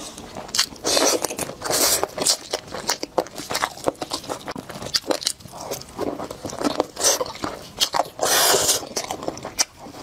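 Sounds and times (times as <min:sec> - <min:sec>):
chewing: 0:00.0 - 0:10.0
crab shell cracking: 0:00.5 - 0:08.2.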